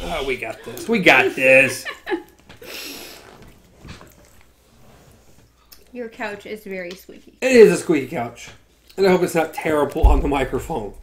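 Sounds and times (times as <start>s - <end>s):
couch squeaking: 2.4s - 5.5s.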